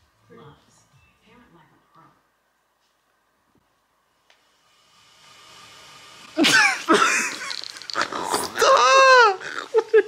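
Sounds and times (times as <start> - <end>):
people laughing loudly: 6.4 - 7.6
squealing cries: 8.0 - 9.8.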